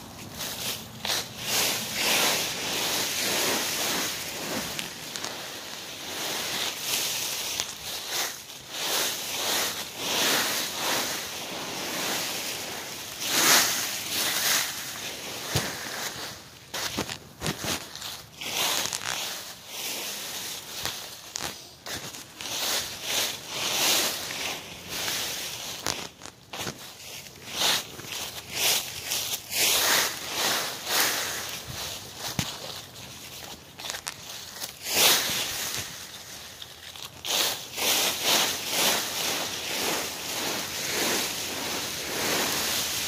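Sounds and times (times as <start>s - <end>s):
dry leaves rustling and crunching: 0.0s - 43.0s.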